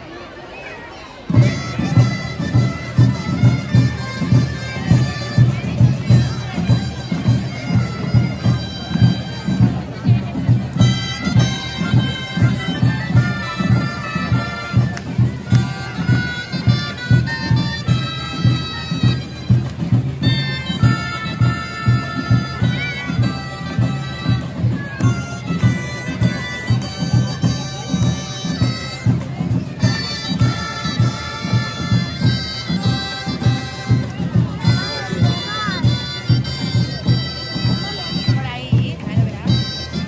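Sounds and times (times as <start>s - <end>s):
steady drum beat: 1.3s - 40.0s
shrill reed woodwinds playing: 1.4s - 38.4s.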